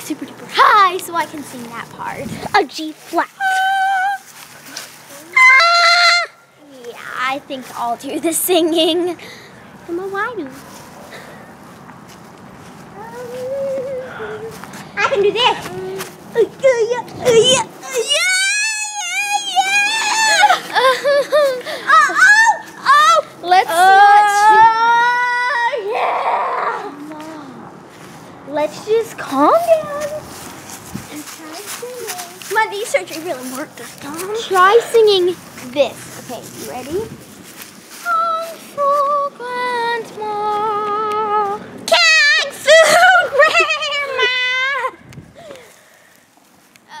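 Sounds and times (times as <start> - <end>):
girl singing high notes: 3.1 - 4.3, 5.1 - 6.7, 13.0 - 20.8, 21.5 - 27.6, 38.0 - 45.0.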